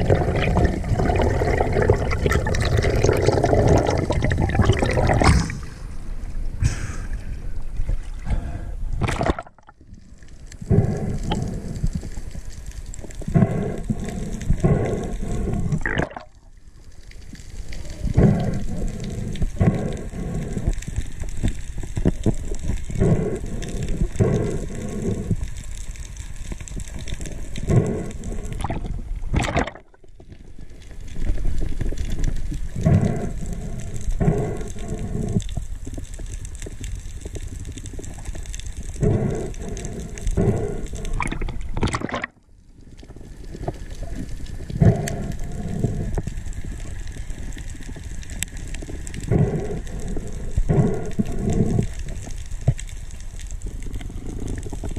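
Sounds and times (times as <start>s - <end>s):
muffled underwater water rush: 0.0s - 54.9s.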